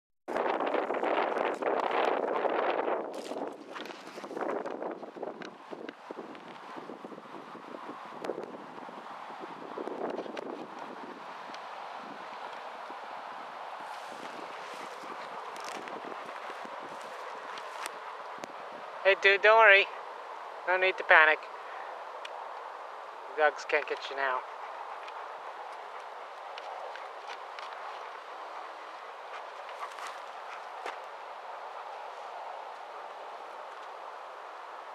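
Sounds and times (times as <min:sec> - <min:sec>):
wind buffeting microphone: 0:00.3 - 0:19.0
dry grass and twigs crackling: 0:00.4 - 0:09.0, 0:13.6 - 0:18.8, 0:24.5 - 0:34.1.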